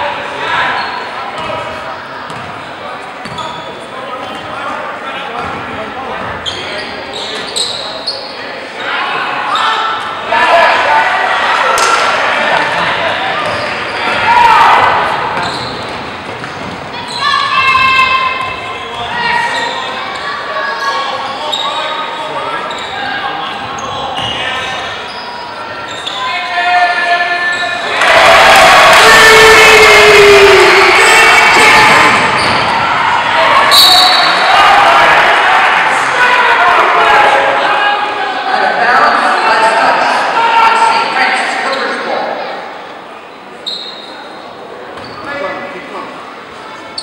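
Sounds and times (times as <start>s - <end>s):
crowd shouting: 8.8s - 15.5s, 25.7s - 41.5s.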